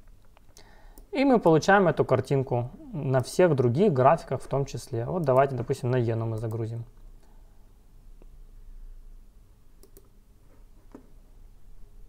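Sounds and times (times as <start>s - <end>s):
faint low hum: 0.0s - 12.0s
computer mouse clicks: 9.8s - 10.2s.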